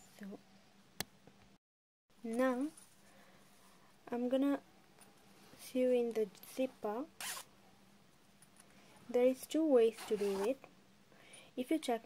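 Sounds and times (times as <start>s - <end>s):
zipper zipping: 7.2s - 7.5s, 9.9s - 10.6s.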